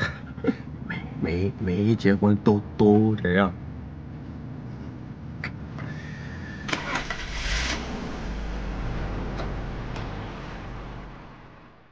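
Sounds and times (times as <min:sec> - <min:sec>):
car engine starting and running: 0:05.9 - 0:11.9.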